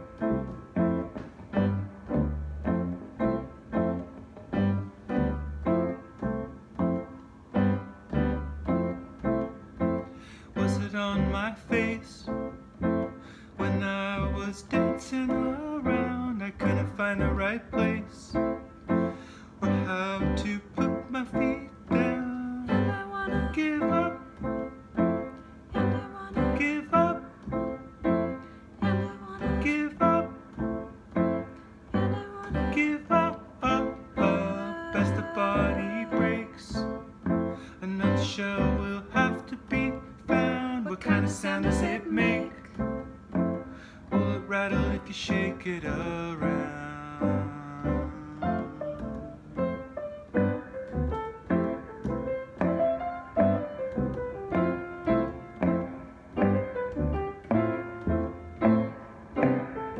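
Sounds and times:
piano and guitar playing: 0.0 - 59.9.

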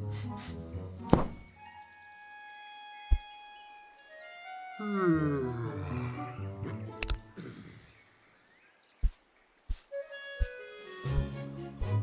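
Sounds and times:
gentle cartoon music: 0.0 - 8.0, 9.7 - 12.0
sharp thump: 1.1 - 1.4
short deep thud: 1.1 - 1.4.

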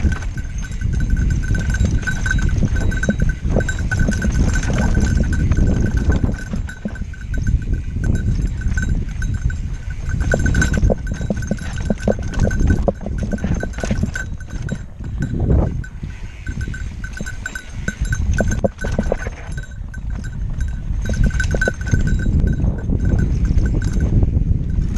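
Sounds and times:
bike rattling over rocks: 0.0 - 24.9
high pulsing ring: 0.0 - 24.9
wind rumble on camera: 0.0 - 24.9.

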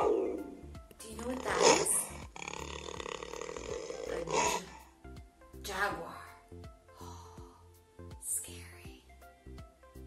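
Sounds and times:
background music: 0.0 - 10.0
jaguar roaring grunts: 1.3 - 4.8.

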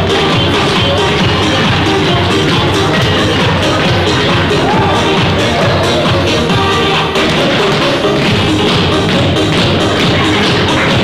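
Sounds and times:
loud music: 0.0 - 11.0
tap shoes striking hard floor: 7.2 - 11.0.

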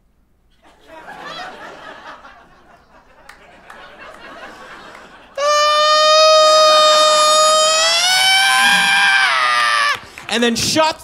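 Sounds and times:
man imitating baby scream: 5.4 - 10.0.

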